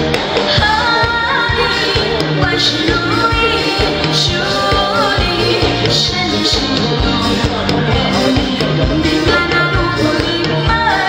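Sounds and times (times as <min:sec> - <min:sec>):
band with steady drum beat: 0:00.0 - 0:11.0
woman singing pop song: 0:00.2 - 0:11.0.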